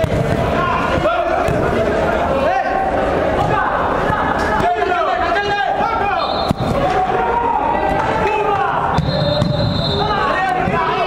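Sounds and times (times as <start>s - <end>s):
people calling out in hall: 0.0s - 11.0s.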